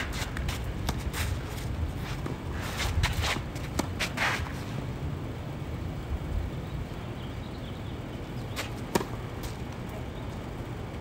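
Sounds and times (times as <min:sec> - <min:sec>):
shoes scuffing on clay court: 0:00.0 - 0:04.8, 0:08.4 - 0:10.5
tennis ball strike: 0:03.0 - 0:04.5, 0:08.5 - 0:09.6
racket hitting a serve: 0:08.6 - 0:09.6.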